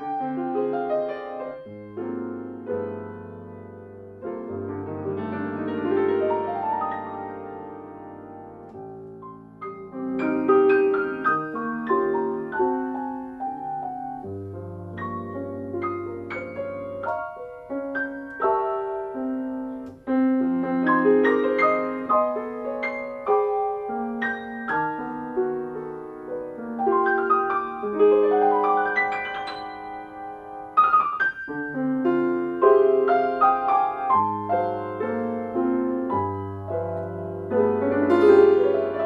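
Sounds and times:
solo piano jazz ballad: 0:00.0 - 0:39.0.

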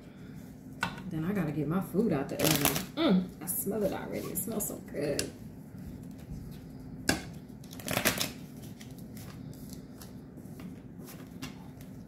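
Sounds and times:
cards being shuffled: 0:07.6 - 0:12.0.

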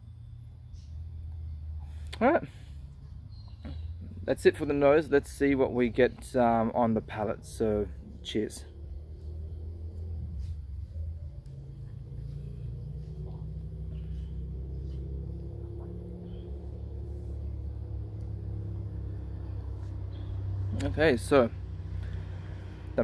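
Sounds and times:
low outdoor rumble: 0:00.0 - 0:23.0.

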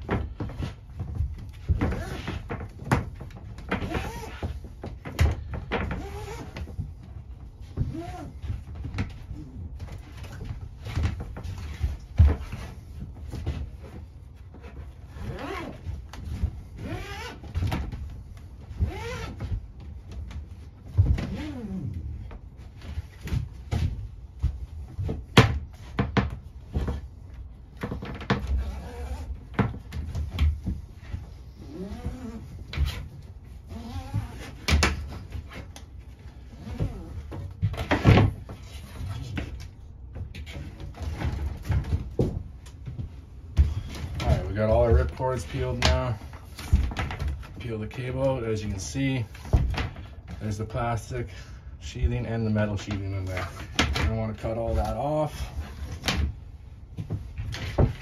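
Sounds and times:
dull knocks of cable handling: 0:00.0 - 0:51.2, 0:52.0 - 0:58.0.

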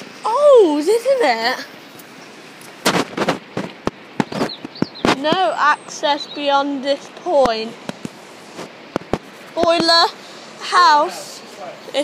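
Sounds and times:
sharp knocks and clatters: 0:02.8 - 0:05.5, 0:08.9 - 0:09.9.

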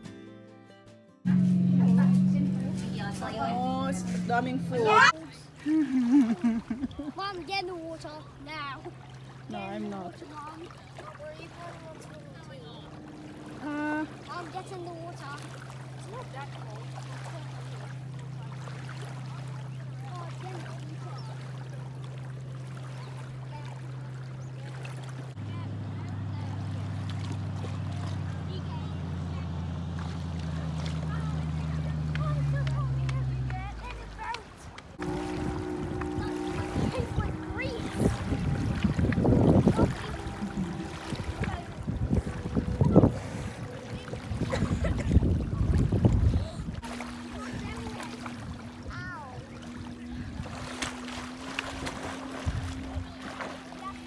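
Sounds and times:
steady low hum: 0:01.3 - 0:28.1, 0:35.0 - 0:54.0
water sloshing: 0:01.3 - 0:54.0
faint distant voices: 0:07.2 - 0:54.0
wind rumbling on microphone: 0:35.0 - 0:53.3.

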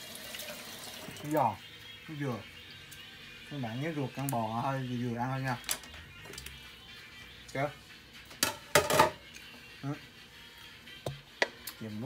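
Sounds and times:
utensils clinking against a pot: 0:08.4 - 0:09.2.

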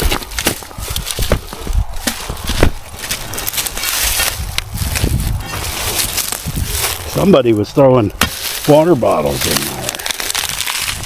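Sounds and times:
low microphone rumble: 0:00.0 - 0:08.6
rotten wood cracking and crunching: 0:00.0 - 0:11.0.

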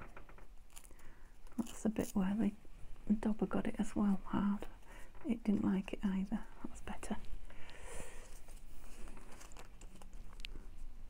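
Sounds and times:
paper rustle: 0:08.2 - 0:10.9.

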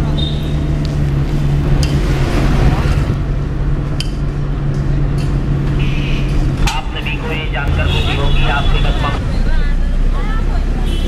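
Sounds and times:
road noise: 0:00.0 - 0:11.0
street sounds: 0:00.0 - 0:11.0
vehicle engine: 0:00.0 - 0:11.0
voices: 0:06.6 - 0:11.0.

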